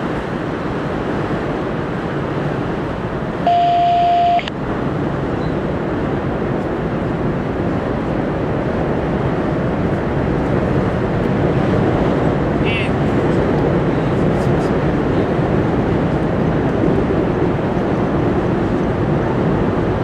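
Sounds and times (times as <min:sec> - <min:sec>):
loud electronic beep: 0:03.4 - 0:04.5.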